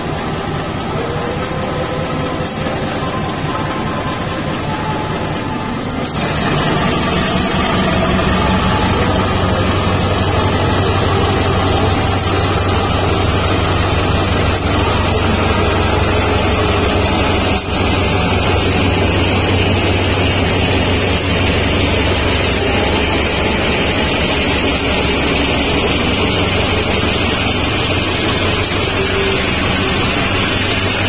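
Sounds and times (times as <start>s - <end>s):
locomotive engine drone: 0.0s - 31.0s.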